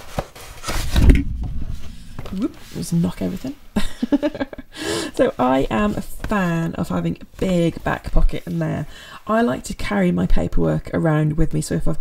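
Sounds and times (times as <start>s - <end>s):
rustling: 0.0s - 3.6s.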